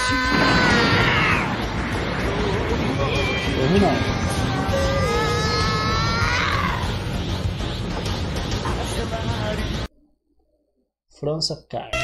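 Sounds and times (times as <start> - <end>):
character screaming: 0.0 - 1.5, 4.0 - 7.0.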